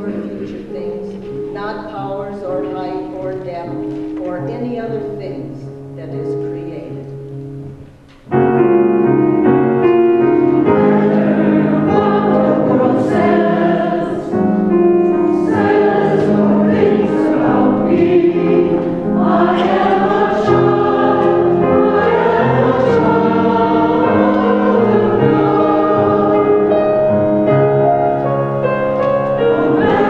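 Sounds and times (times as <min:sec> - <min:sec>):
mixed choir singing: 0:10.4 - 0:27.4, 0:29.4 - 0:30.0.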